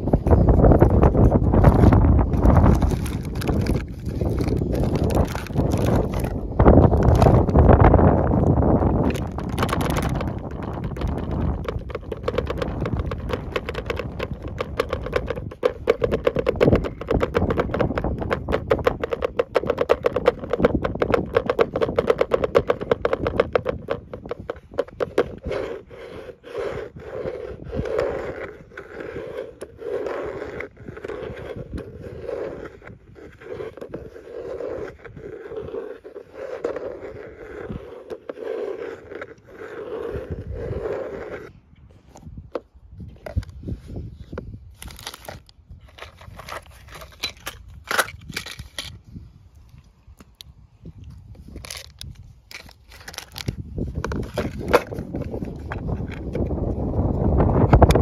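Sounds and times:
fingernails scratching plastic lid: 0.3s - 41.5s, 44.7s - 49.0s, 51.5s - 58.0s.

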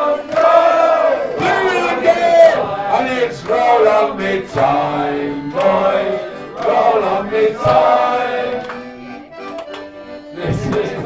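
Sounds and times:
men singing together: 0.0s - 8.9s, 10.3s - 11.0s.

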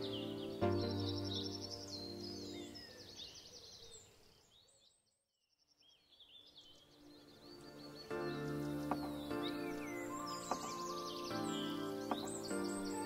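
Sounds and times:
background music: 0.0s - 3.2s, 6.6s - 13.0s
birdsong chirping: 0.0s - 13.0s.

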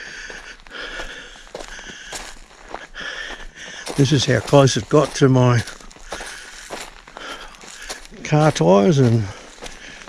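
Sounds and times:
footsteps crunching on leaves: 0.0s - 10.0s.

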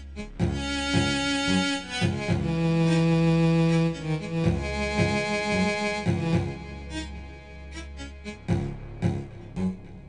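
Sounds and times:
synthesizer music: 0.0s - 10.0s.

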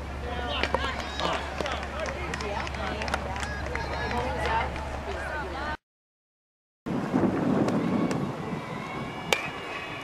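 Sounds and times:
wind noise on microphone: 6.9s - 10.0s.

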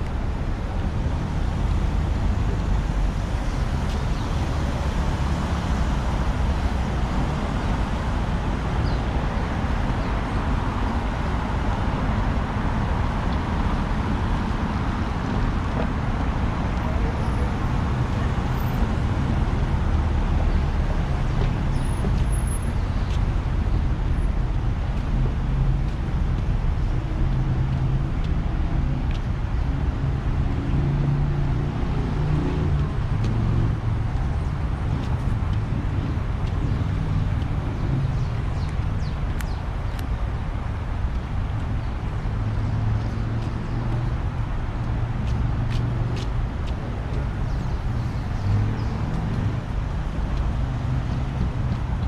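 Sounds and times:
cars passing: 0.0s - 52.0s.

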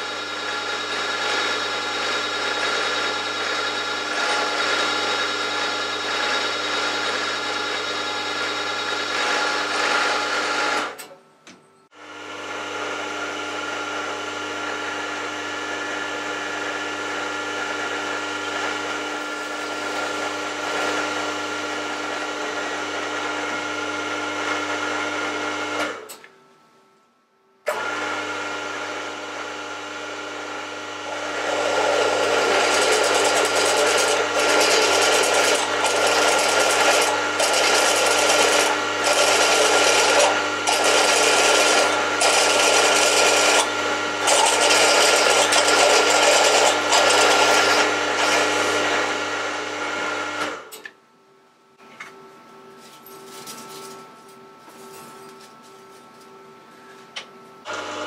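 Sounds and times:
drill grinding into metal: 0.0s - 11.0s, 16.5s - 23.6s, 30.9s - 50.6s
milling machine motor hum: 0.0s - 11.0s, 12.0s - 26.0s, 27.7s - 50.8s, 57.6s - 58.0s.

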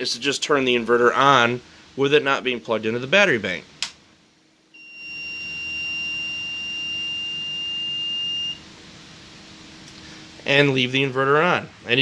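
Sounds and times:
inverter buzzer beep: 4.7s - 8.6s.

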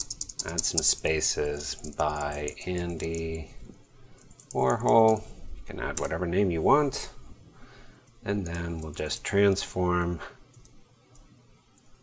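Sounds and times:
computer keyboard clicks: 0.0s - 1.0s, 1.6s - 3.3s, 4.2s - 5.2s.

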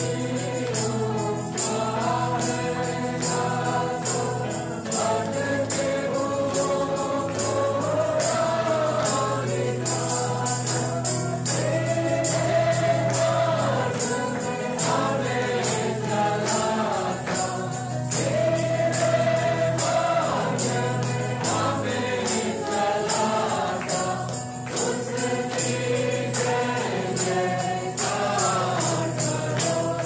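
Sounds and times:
choir singing worship music: 0.0s - 30.0s.

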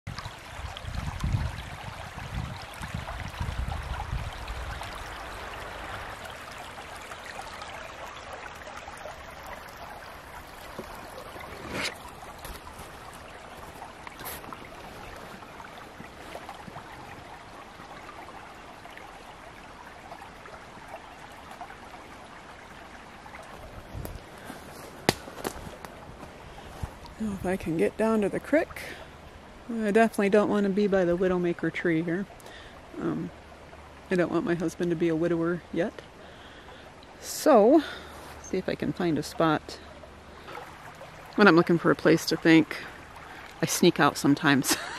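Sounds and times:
creek babbling over stones: 0.1s - 44.9s.

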